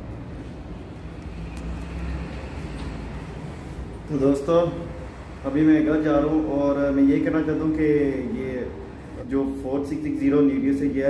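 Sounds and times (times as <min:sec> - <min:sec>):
city background rumble: 0:00.0 - 0:11.0.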